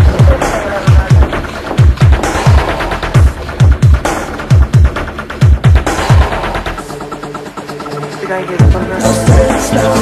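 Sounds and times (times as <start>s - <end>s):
heavy electronic kick drums: 0.0s - 8.0s, 8.6s - 10.0s
electronic dance music: 0.0s - 10.0s
gritty synths: 0.0s - 10.0s.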